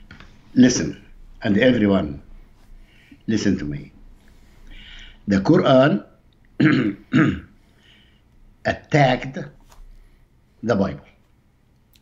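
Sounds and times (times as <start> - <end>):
man clearing his throat: 6.6 - 7.5.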